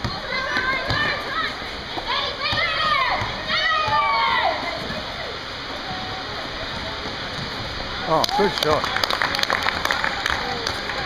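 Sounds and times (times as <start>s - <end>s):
indoor court background noise: 0.0s - 11.0s.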